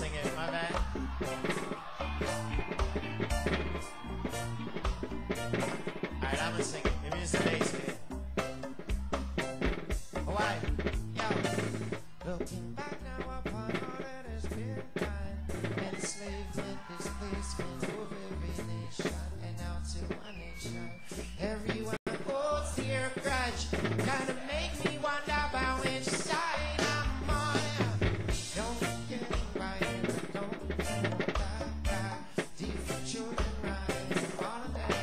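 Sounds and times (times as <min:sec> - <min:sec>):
melodic instrument parts: 0:00.0 - 0:12.7
hand drums playing: 0:00.0 - 0:20.2, 0:21.7 - 0:35.0.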